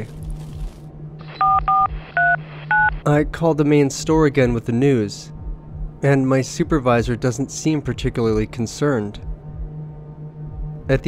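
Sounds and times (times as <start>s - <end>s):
telephone keypad beeps: 1.4s - 3.0s.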